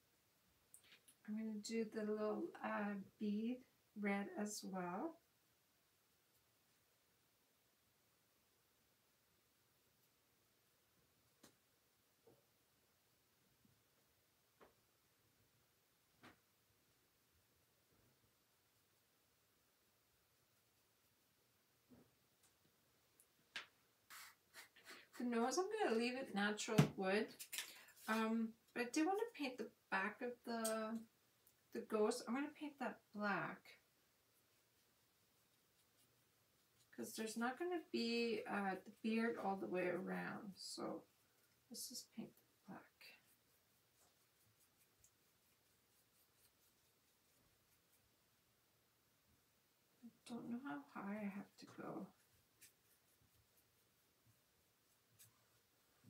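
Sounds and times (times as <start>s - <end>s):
paintbrush and bottle rustling: 23.2s - 26.7s, 27.3s - 29.4s, 33.5s - 48.8s, 50.1s - 56.0s.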